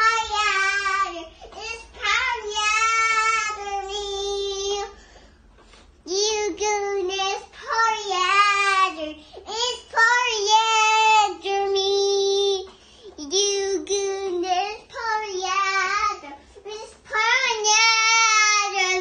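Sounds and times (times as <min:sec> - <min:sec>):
toddler girl singing: 0:00.0 - 0:05.0, 0:06.0 - 0:19.0.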